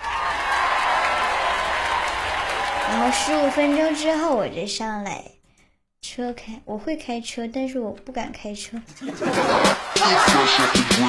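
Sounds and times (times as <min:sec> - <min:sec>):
recorded applause: 0:00.0 - 0:04.6, 0:09.2 - 0:11.0
person speaking: 0:02.9 - 0:05.4, 0:10.0 - 0:11.0.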